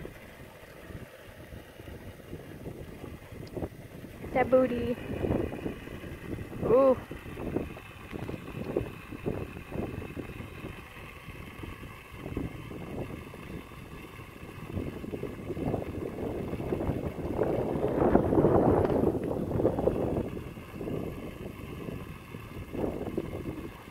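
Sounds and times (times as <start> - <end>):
wind buffeting microphone: 0.0 - 23.9.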